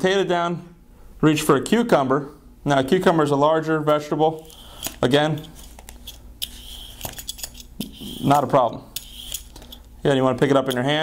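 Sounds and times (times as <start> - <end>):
peeler scraping cucumber skin: 4.4 - 9.9.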